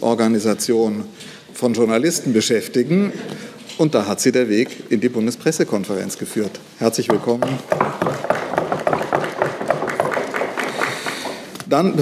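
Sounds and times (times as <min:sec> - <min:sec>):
audience applause: 0:08.2 - 0:11.4.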